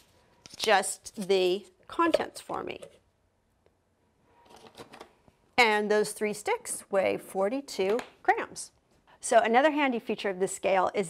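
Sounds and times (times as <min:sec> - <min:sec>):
objects rustling and knocking: 0:04.4 - 0:05.2.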